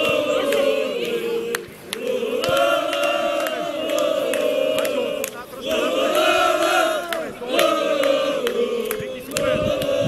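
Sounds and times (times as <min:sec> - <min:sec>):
football supporters chanting: 0:00.0 - 0:10.0.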